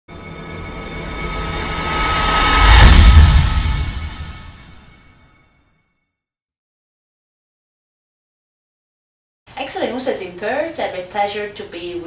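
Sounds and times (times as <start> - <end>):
droning high tones: 0.1 - 5.8.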